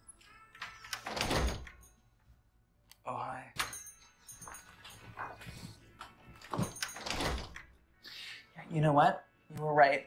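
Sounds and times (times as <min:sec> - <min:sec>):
glass door opening and closing: 0:00.5 - 0:01.8, 0:06.4 - 0:07.8.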